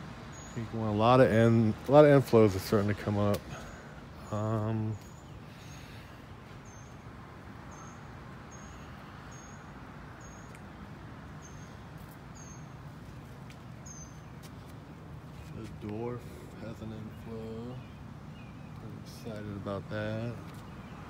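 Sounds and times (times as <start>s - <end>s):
background outdoor hiss: 0.0s - 21.0s.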